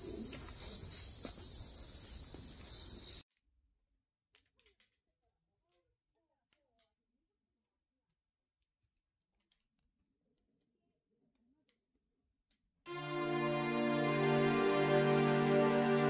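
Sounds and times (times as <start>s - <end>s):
music: 12.9s - 16.0s.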